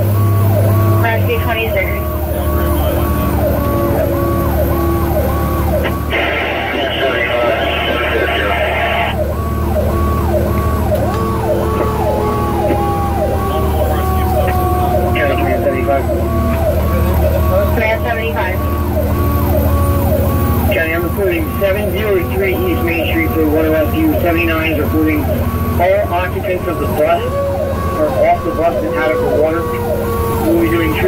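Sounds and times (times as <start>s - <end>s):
electronic siren yelping: 0.0s - 31.0s
mechanical siren winding down: 0.0s - 31.0s
truck engine drone: 0.0s - 31.0s.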